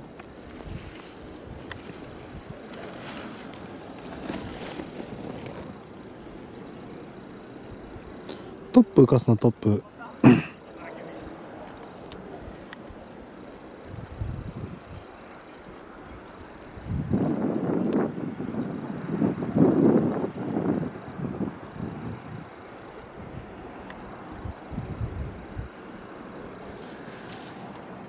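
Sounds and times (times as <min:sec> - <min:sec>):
wind buffeting microphone: 0:00.0 - 0:08.3, 0:11.2 - 0:28.0.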